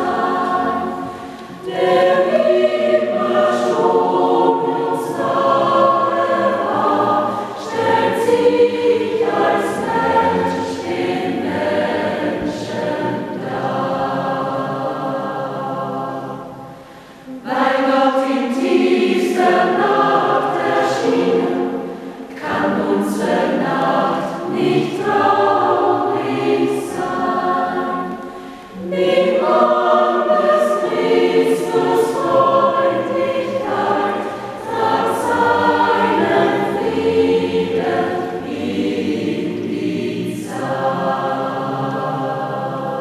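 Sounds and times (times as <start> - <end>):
mixed choir singing a hymn: 0.0 - 43.0.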